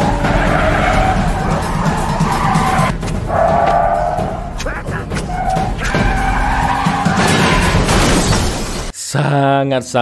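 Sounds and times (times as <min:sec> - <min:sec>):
car tyres screeching: 0:00.0 - 0:07.9
film score music: 0:00.0 - 0:08.0.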